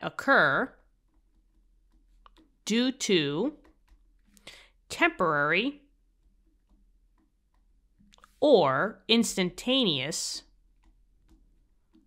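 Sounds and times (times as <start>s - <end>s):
stylus tapping tablet screen: 0.0s - 12.0s.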